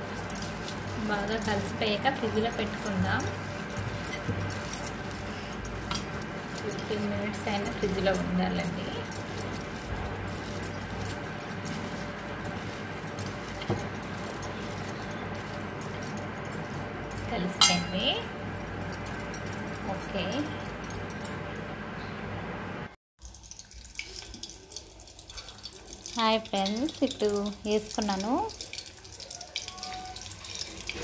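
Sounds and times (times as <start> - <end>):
glass bangles clinking: 0.0 - 21.6, 28.5 - 31.0.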